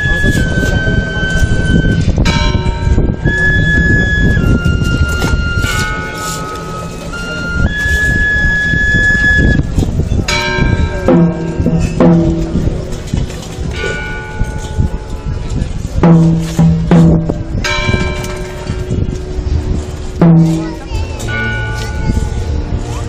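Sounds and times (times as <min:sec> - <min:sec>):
band playing slow funeral march: 0:00.0 - 0:09.6, 0:10.6 - 0:14.0, 0:16.0 - 0:21.6
noisy crowd: 0:00.0 - 0:23.0.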